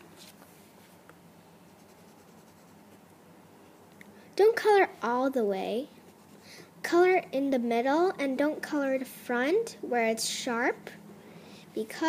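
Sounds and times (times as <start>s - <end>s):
marker scratching: 1.7s - 3.0s.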